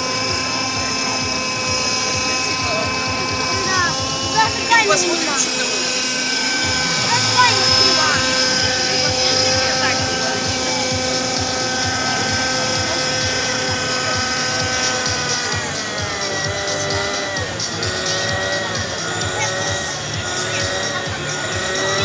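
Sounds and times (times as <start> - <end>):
model helicopter motor whining: 0.0 - 22.0.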